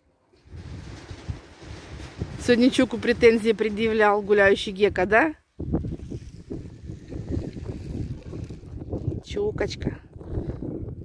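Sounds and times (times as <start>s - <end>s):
wind buffeting microphone: 0.4s - 11.0s.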